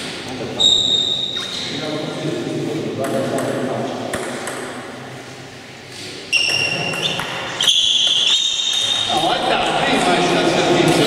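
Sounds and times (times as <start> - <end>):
table tennis ball bouncing: 3.0 - 5.0, 6.4 - 9.2.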